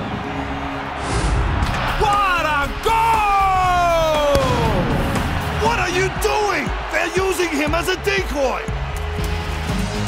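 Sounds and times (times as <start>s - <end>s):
background music: 0.0s - 10.0s
man shouting goal: 2.0s - 4.9s.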